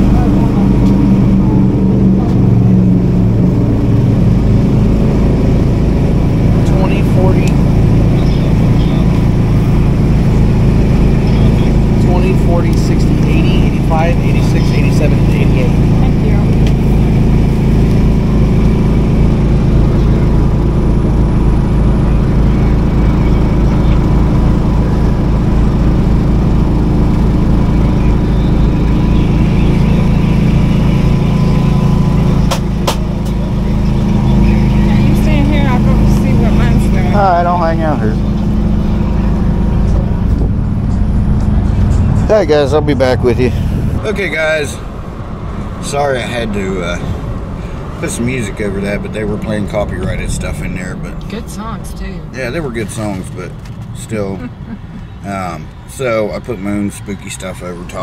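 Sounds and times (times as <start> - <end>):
low engine hum: 0.0 - 58.0
faint voices: 26.9 - 44.9.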